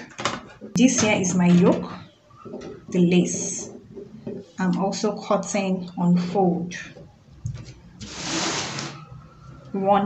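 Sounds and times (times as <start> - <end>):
paper sliding across table: 8.0 - 9.0.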